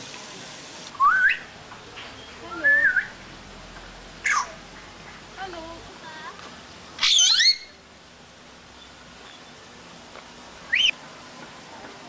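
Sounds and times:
parrot whistling: 0:01.0 - 0:01.5, 0:07.0 - 0:07.8, 0:10.7 - 0:11.0.

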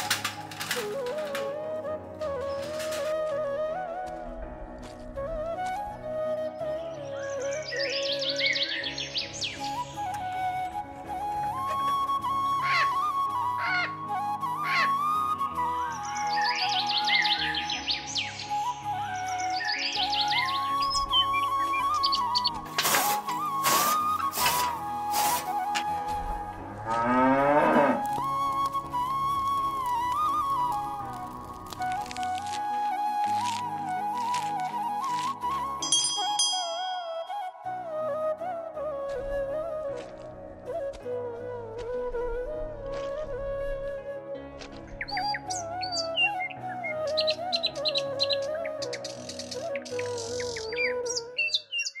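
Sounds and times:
flute music: 0:00.0 - 0:52.0
birds chirping: 0:11.5 - 0:24.7, 0:44.9 - 0:52.0
cow mooing: 0:26.8 - 0:28.1.

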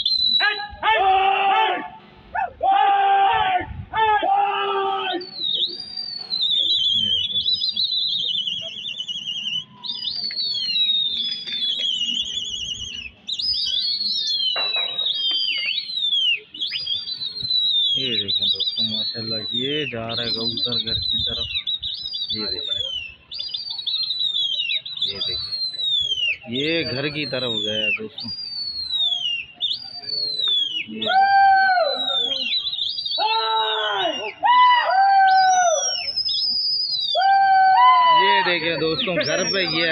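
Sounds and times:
shrill warbling whistles: 0:00.0 - 0:00.9, 0:04.6 - 0:39.9
men calling: 0:00.4 - 0:05.6, 0:30.3 - 0:32.6, 0:33.2 - 0:36.0, 0:37.2 - 0:39.9.

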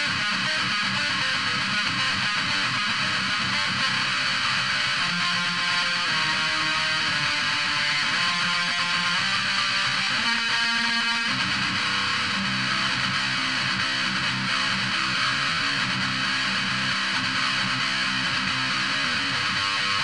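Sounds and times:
electric guitar metal lead riff: 0:00.0 - 0:20.0.

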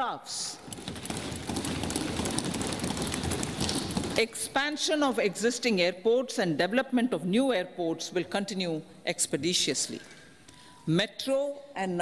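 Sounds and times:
people thumping desks: 0:00.6 - 0:04.6.

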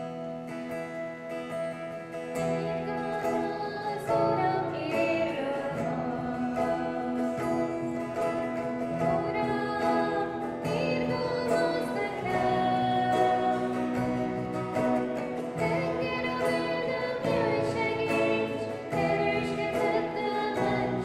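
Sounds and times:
acoustic guitar: 0:00.0 - 0:21.0
women singing worship song: 0:15.5 - 0:21.0.

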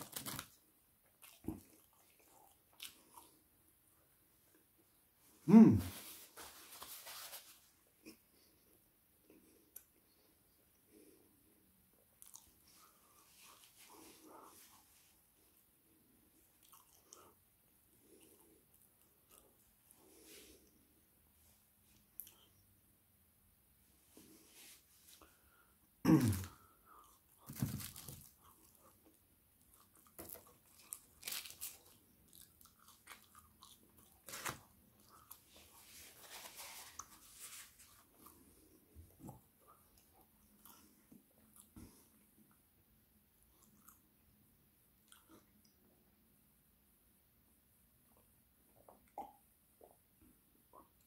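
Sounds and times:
paper wrapper crinkling: 0:00.0 - 0:00.6, 0:27.5 - 0:28.4, 0:30.2 - 0:32.0, 0:34.2 - 0:34.6
faint chewing: 0:00.0 - 0:03.5, 0:11.9 - 0:14.9, 0:15.5 - 0:20.8, 0:21.9 - 0:22.7, 0:26.3 - 0:42.7, 0:43.4 - 0:45.8
mouth clicks and smacks: 0:48.7 - 0:51.0.

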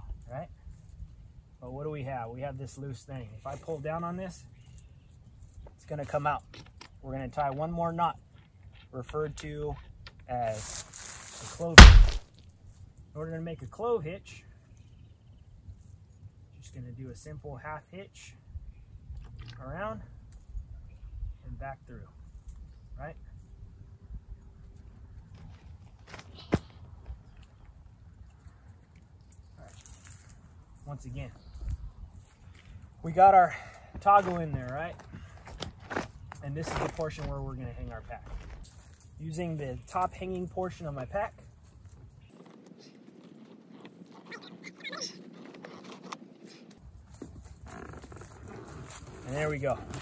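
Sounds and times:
rope rustling and scraping: 0:10.5 - 0:12.2, 0:28.3 - 0:33.3, 0:37.8 - 0:39.2, 0:41.3 - 0:50.0
sharp knock: 0:11.8 - 0:12.2
low wind rumble on microphone: 0:18.4 - 0:26.1, 0:30.4 - 0:33.1.

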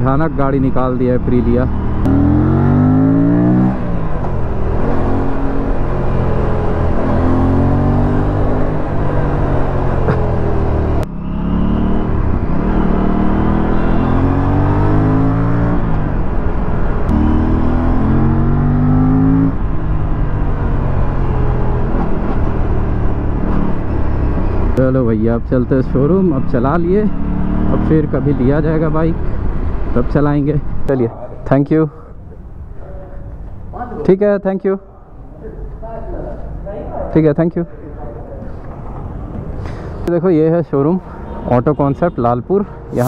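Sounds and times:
wind and road noise: 0:00.0 - 0:43.0
motorcycle engine accelerating: 0:01.2 - 0:24.8, 0:26.5 - 0:29.9.

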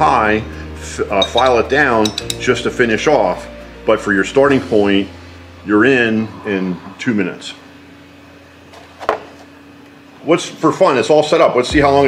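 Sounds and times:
low hum: 0:00.0 - 0:10.2.

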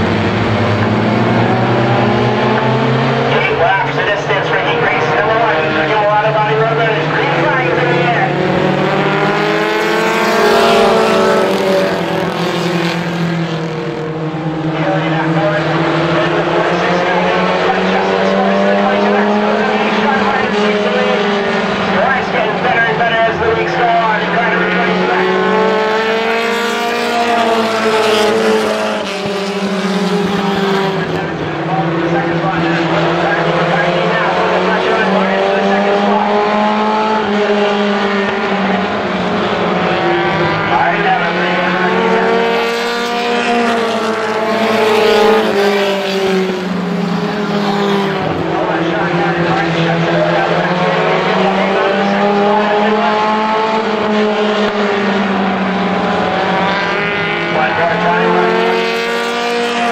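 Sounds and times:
racing car engines: 0:00.0 - 0:59.9.

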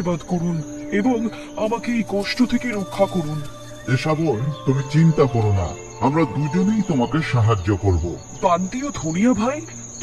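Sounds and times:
person speaking: 0:00.0 - 0:09.6
crickets chirring: 0:00.0 - 0:10.0.

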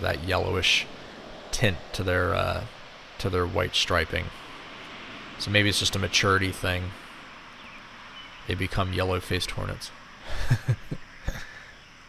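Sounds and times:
faint steady hiss: 0:00.0 - 0:12.0
man chuckling: 0:10.2 - 0:11.7.

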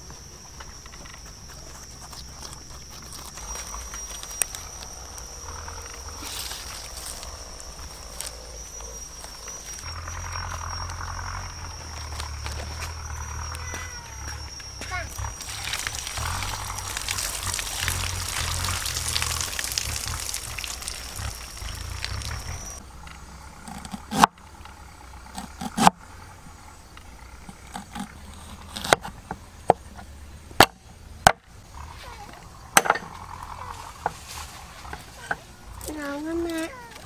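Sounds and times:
high-pitched insect drone: 0:00.0 - 0:28.7, 0:31.5 - 0:37.0
rustling leaves: 0:01.0 - 0:23.7, 0:31.7 - 0:37.0.

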